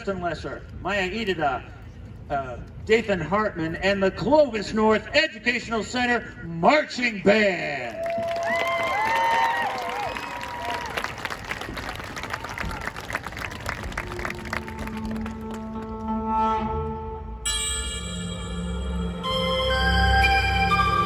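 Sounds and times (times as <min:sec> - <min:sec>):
crowd applauding and cheering: 0:07.8 - 0:16.0
marching band music: 0:11.7 - 0:16.2.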